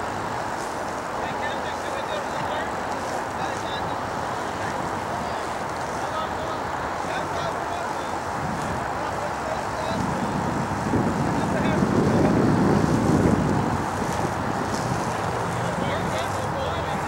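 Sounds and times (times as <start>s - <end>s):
faint distant voices: 0.0s - 17.0s.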